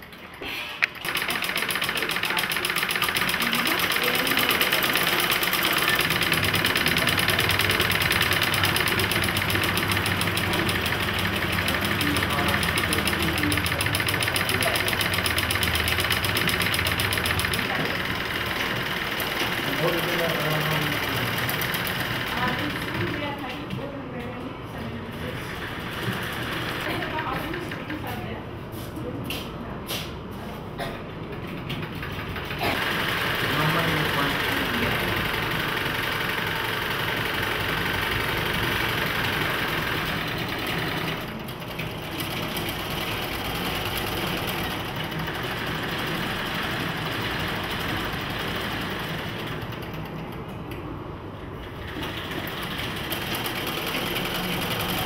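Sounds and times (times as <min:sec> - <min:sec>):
sewing machines clattering: 0:00.0 - 0:23.8, 0:25.1 - 0:28.2, 0:31.2 - 0:50.7, 0:51.4 - 0:55.0
voices in room: 0:00.0 - 0:55.0.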